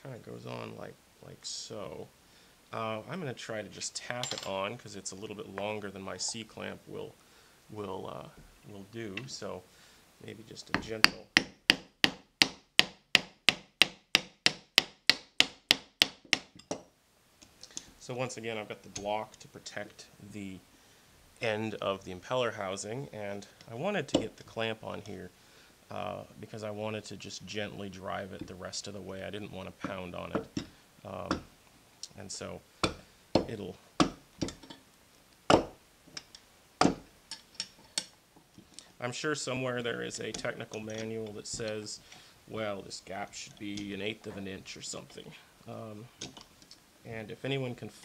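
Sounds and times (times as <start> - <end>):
mallet striking wooden block: 10.8 - 16.7, 31.3 - 31.5, 32.8 - 34.6, 35.5 - 35.8, 36.8 - 37.1.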